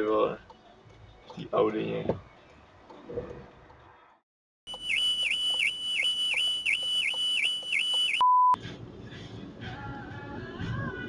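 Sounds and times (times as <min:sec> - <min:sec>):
electronic warbling alarm: 0:04.7 - 0:08.2
loud single-pitch beep: 0:04.7 - 0:08.6.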